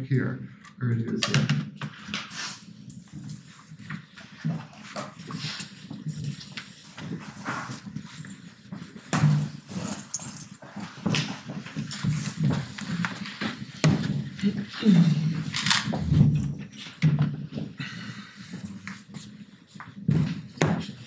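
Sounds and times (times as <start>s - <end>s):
shuffling footsteps: 2.6s - 21.0s.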